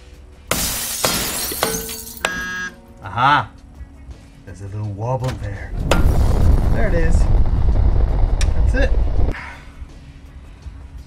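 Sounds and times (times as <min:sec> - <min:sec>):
glass shattering: 0:00.5 - 0:02.6.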